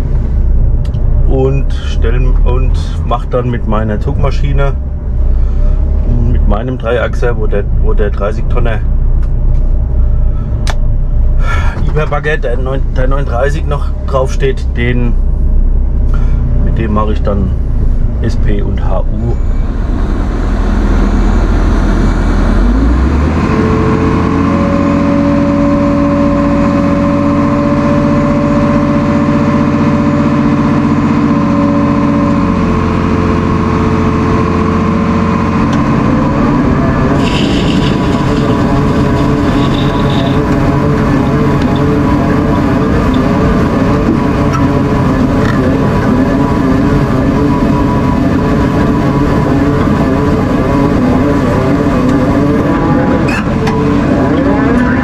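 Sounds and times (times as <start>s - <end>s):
excavator diesel engine: 0.0s - 55.0s
machine whining tones: 13.4s - 55.0s.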